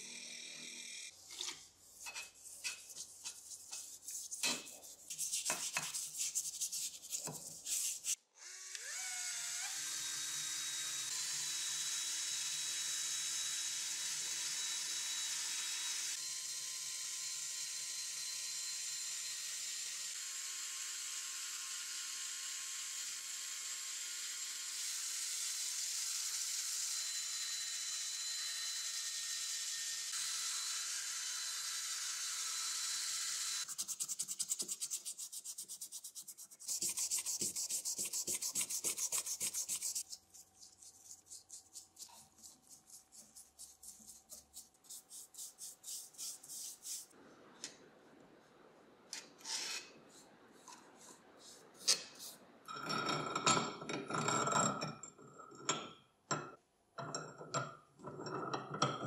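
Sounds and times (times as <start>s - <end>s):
drill motor whine: 0.0s - 1.1s, 8.4s - 33.7s
rapid regular scratching strokes: 1.6s - 8.2s, 33.6s - 47.2s.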